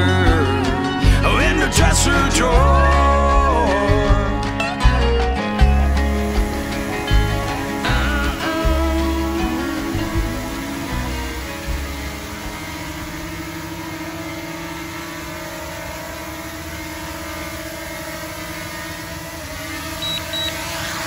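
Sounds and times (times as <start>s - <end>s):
country song: 0.0s - 12.7s
drone propellers humming: 0.0s - 21.0s
short high beeps: 19.9s - 20.7s.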